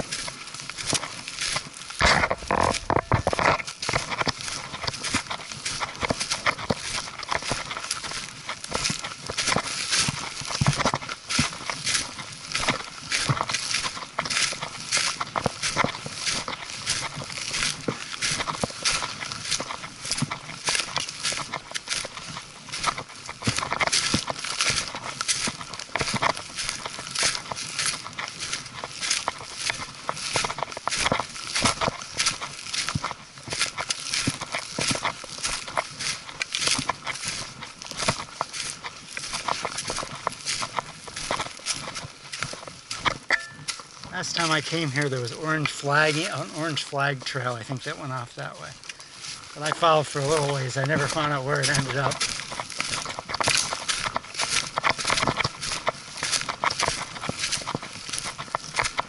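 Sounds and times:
footsteps crunching dry leaves: 0.0 - 59.0
hiking poles striking ground: 0.0 - 59.0.

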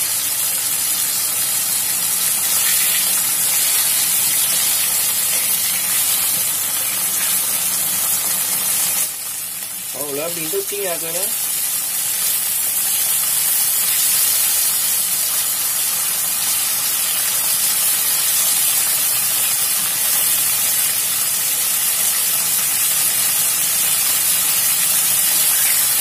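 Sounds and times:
meat sizzling in hot oil: 0.0 - 26.0.

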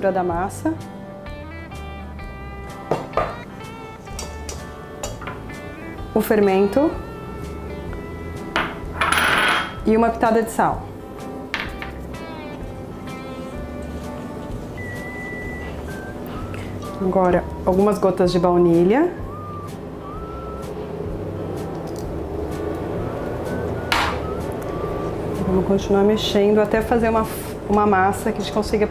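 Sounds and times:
bottle set down on counter: 2.9 - 3.4
glass dish knocking on metal bowl: 2.9 - 3.4, 8.6 - 9.8.

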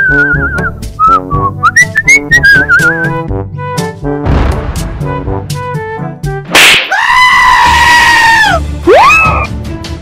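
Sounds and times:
cartoon background music: 0.0 - 10.0
loud noisy hit: 4.2 - 5.3.

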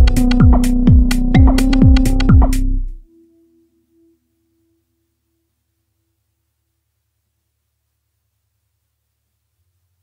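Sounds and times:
electronic techno music: 0.0 - 3.0.

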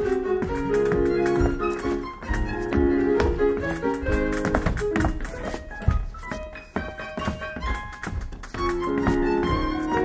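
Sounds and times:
piano and violin music: 0.0 - 10.0.

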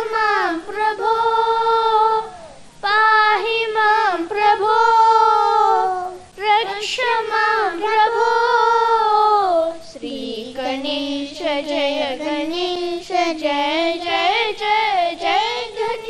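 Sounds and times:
children singing: 0.0 - 16.0.

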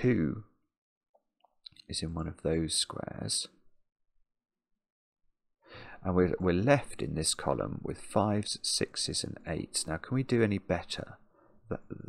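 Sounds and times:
soft intake of breath: 5.7 - 6.0.

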